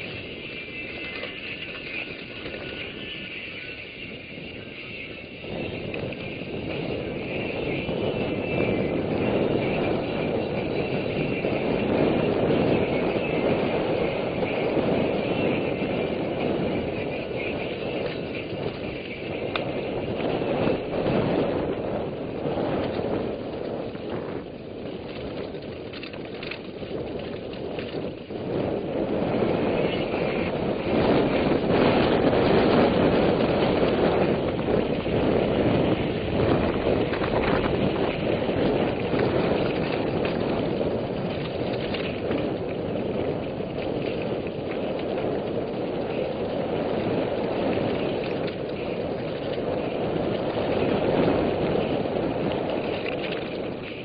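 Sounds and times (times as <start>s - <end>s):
mountain bike rattling over dirt: 0.0s - 54.0s
wind on microphone: 0.0s - 54.0s.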